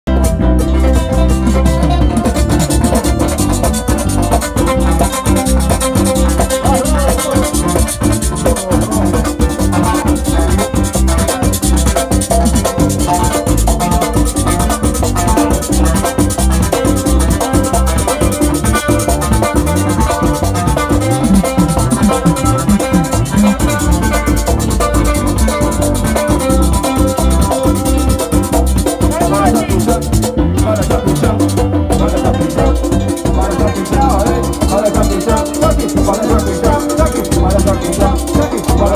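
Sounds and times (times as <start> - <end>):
drums: 0.1 - 38.9
electric guitar: 0.1 - 38.9
fast high percussion rhythm: 0.1 - 38.9
sliding electric bass line: 0.1 - 38.9
strummed acoustic guitars: 0.1 - 38.9.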